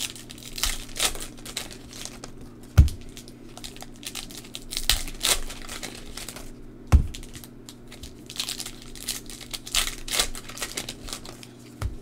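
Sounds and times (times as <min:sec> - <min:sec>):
foil wrappers crinkling and tearing: 0:00.0 - 0:12.0
dull thump: 0:02.8 - 0:03.1, 0:06.9 - 0:07.2.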